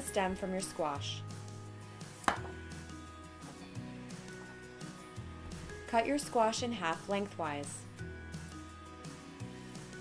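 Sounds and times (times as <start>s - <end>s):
soft background music: 0.0s - 10.0s
knife chopping on cutting board: 2.2s - 2.6s.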